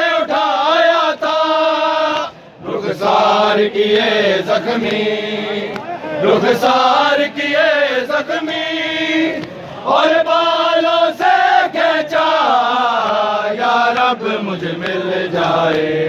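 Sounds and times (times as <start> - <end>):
men chanting a lament: 0.0 - 16.0.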